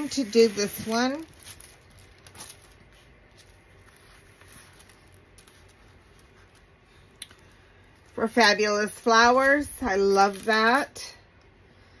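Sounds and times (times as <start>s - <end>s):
plastic film rustling: 0.0s - 11.1s.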